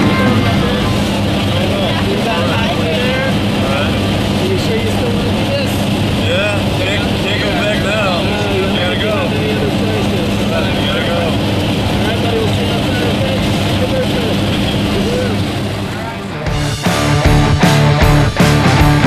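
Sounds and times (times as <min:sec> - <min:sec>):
people talking: 0:00.0 - 0:16.6
airplane engines droning: 0:00.0 - 0:19.0.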